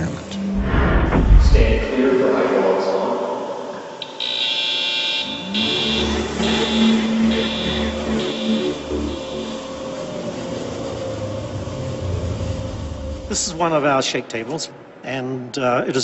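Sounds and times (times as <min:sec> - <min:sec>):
hydraulic machinery drone: 0:00.4 - 0:04.2, 0:05.2 - 0:13.8
warning alarm beeping: 0:04.0 - 0:10.0.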